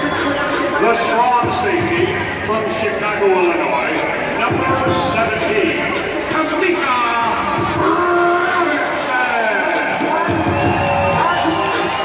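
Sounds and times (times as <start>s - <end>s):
announcer's amplified voice: 0.0s - 12.0s
arena music: 0.0s - 12.0s
crowd noise: 0.0s - 12.0s.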